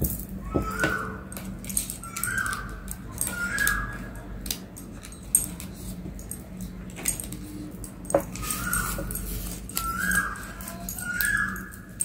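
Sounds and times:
animal whining calls: 1.9s - 4.2s, 8.4s - 12.0s.

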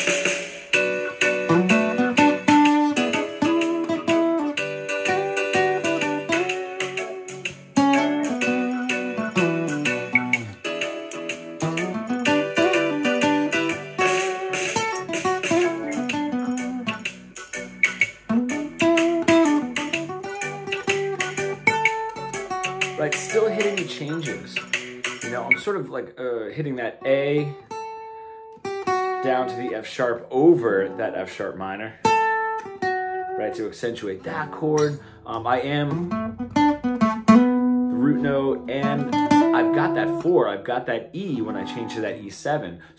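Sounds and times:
acoustic guitar solo: 0.0s - 25.9s, 26.5s - 42.6s.

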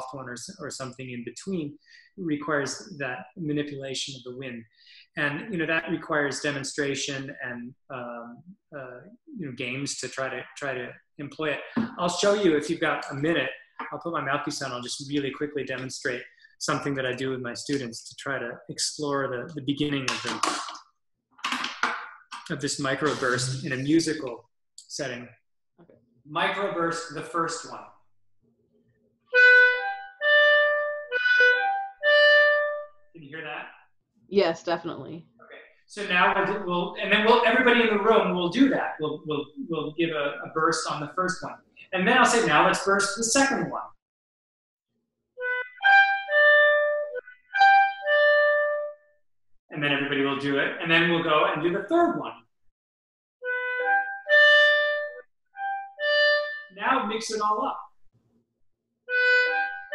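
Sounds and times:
clarinet playing accented notes: 23.0s - 24.1s, 29.3s - 32.9s, 36.0s - 39.7s, 45.4s - 49.0s, 53.4s - 57.2s, 59.1s - 59.9s.

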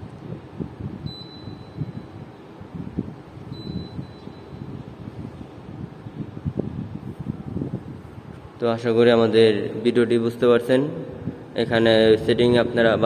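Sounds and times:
low background noise: 0.0s - 13.0s
air conditioner beeping: 0.9s - 7.0s.

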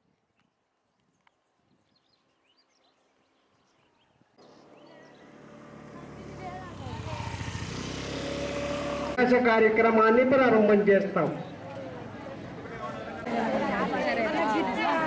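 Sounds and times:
vehicle engine approaching: 4.4s - 10.4s
voices: 4.4s - 15.0s.

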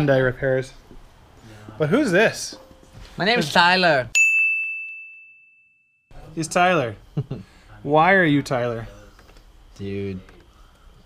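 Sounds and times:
high bell-like ding: 4.1s - 6.1s.

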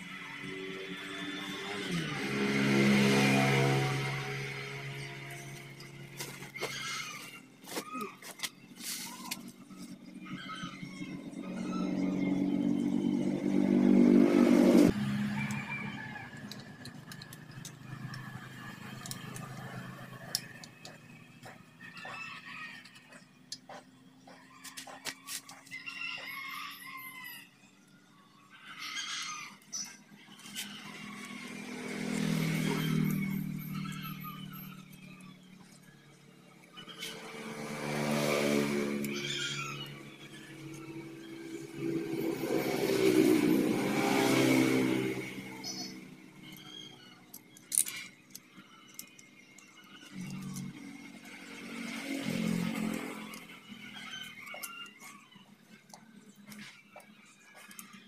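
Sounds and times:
motor vehicles passing: 0.0s - 58.0s.

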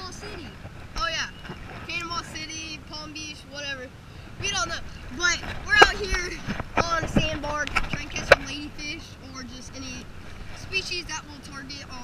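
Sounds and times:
boy talking in high voice: 0.0s - 12.0s.

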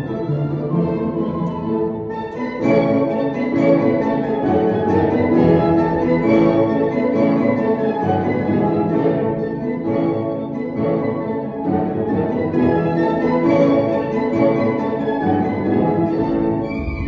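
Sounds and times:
orchestra playing classical music: 0.0s - 17.0s.

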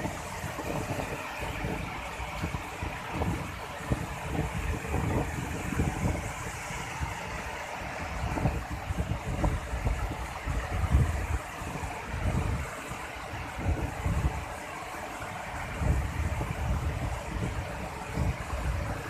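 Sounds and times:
river rapids rushing: 0.0s - 19.0s
wind buffeting microphone: 0.0s - 19.0s.

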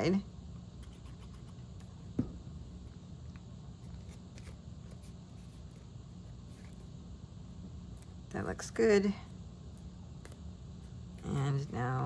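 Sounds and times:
low room hum: 0.0s - 12.0s
paper rustling: 3.8s - 6.9s.

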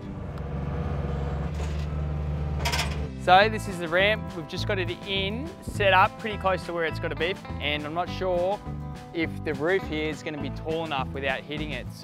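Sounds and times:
engine humming: 0.0s - 3.3s.

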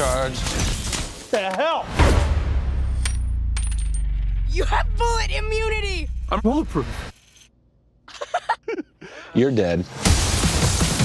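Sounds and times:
heavy hit: 1.9s - 5.2s
deep rumble: 2.0s - 7.1s.

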